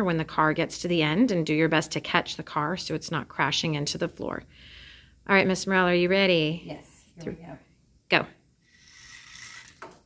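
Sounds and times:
toy car wheels whirring: 8.6s - 10.0s.

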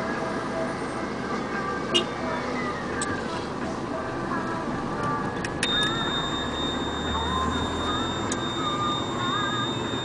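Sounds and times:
high steady whine: 2.0s - 10.0s
high wavering squeals: 5.6s - 10.0s.

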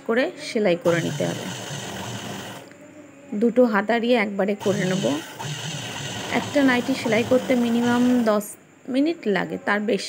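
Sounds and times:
woman speaking: 0.0s - 1.5s, 3.4s - 5.3s, 6.3s - 10.0s.

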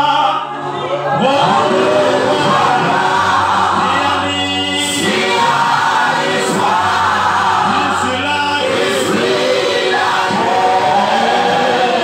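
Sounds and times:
man singing into microphone: 3.7s - 5.7s, 7.6s - 9.2s.

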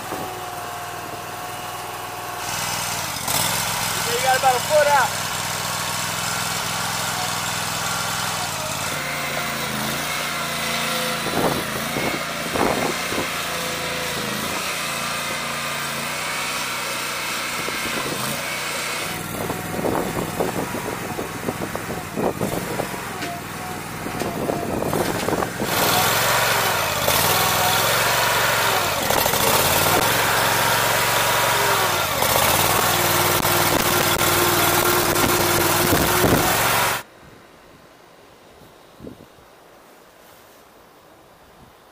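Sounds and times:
small gasoline engine running: 0.0s - 37.1s.

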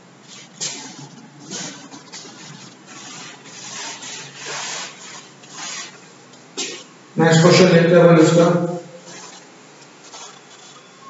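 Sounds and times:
duster rubbing on chalkboard: 0.0s - 6.9s, 9.0s - 10.8s.

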